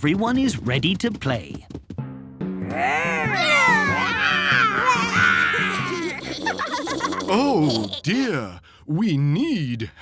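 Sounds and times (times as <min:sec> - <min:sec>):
background music with low notes: 0:00.0 - 0:06.7
cartoon voices roaring: 0:02.6 - 0:08.2.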